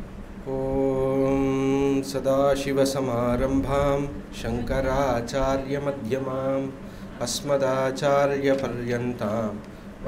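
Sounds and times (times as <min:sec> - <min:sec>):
man chanting om: 0:00.4 - 0:10.0.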